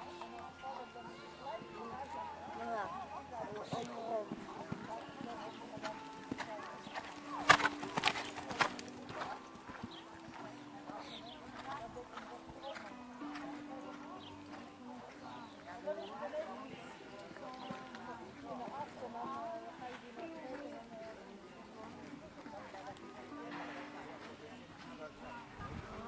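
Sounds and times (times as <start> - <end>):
faint background music: 0.0 - 26.0
faint voices: 0.0 - 26.0
horse hoofbeats on sand: 1.8 - 22.0.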